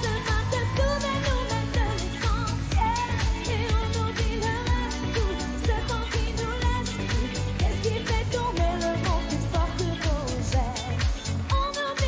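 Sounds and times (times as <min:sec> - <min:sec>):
electronic dance beat: 0:00.0 - 0:12.0
woman singing into microphone: 0:00.0 - 0:12.0.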